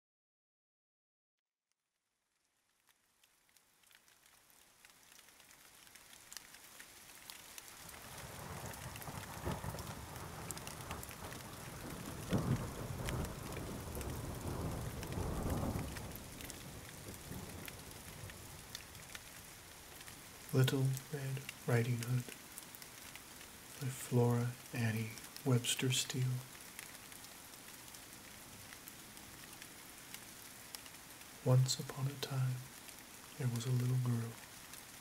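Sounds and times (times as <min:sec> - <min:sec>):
rain falling: 0:02.2 - 0:35.0
rolling thunder: 0:08.1 - 0:18.4.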